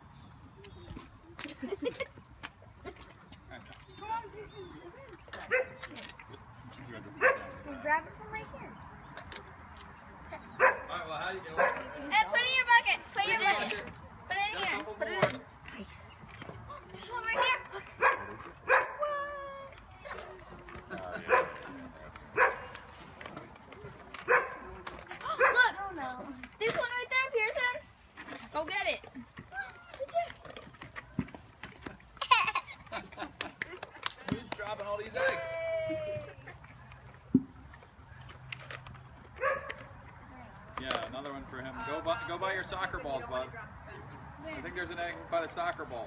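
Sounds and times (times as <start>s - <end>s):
dog barking: 5.5s - 5.8s, 7.2s - 7.6s, 10.6s - 10.9s, 11.6s - 11.9s, 17.4s - 19.0s, 21.3s - 21.6s, 22.4s - 22.7s, 24.3s - 24.6s, 25.4s - 25.7s, 39.4s - 39.8s.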